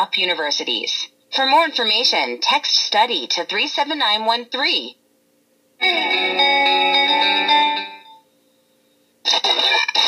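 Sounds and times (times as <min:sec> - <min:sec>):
held chord-like musical tone: 0:05.8 - 0:08.2.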